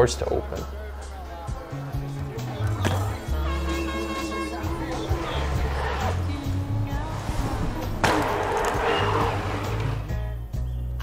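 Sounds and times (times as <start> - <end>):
background music: 0.0 - 11.0
bike tyres on dirt: 2.5 - 10.2.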